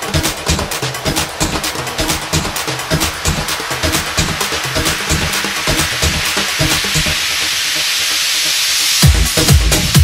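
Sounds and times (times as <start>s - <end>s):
electronic dance music: 0.0s - 10.0s
kick drum and bass beat: 0.0s - 10.0s
rising noise sweep: 0.0s - 10.0s.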